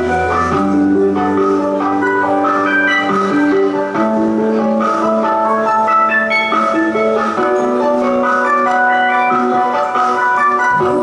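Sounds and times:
instrumental backing track melody: 0:00.0 - 0:11.0.

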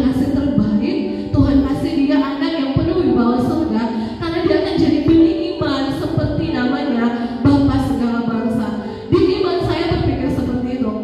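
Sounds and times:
soft music: 0:00.0 - 0:11.0.

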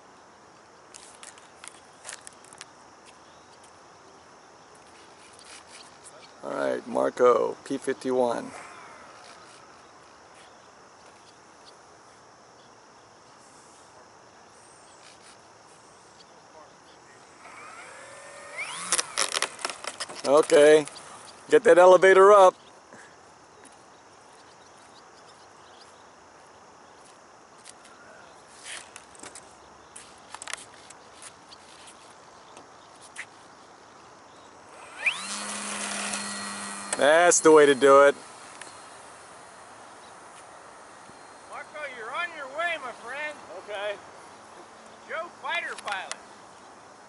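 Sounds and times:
faint insects: 0:00.0 - 0:47.0
electric motor rising whine: 0:17.3 - 0:21.0, 0:34.7 - 0:41.6
loud bursts of noise: 0:34.7 - 0:40.0.

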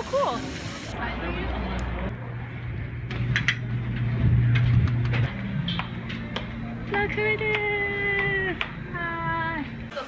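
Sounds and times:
steady low hum: 0:01.2 - 0:10.0.

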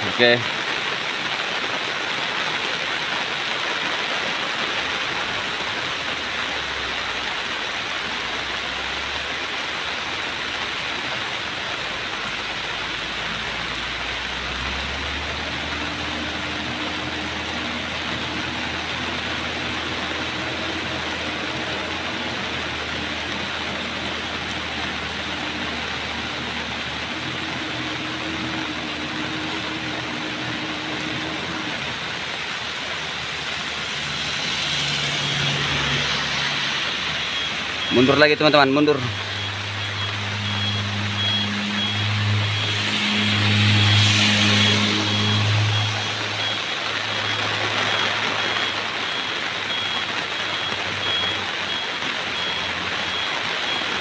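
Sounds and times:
heavy rain falling: 0:00.0 - 0:54.0
truck diesel engine pulling uphill: 0:04.5 - 0:54.0.

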